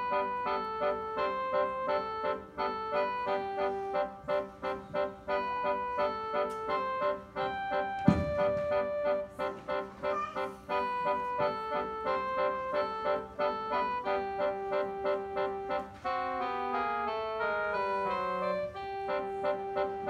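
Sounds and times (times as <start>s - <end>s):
electronic keyboard playing: 0.0s - 20.0s.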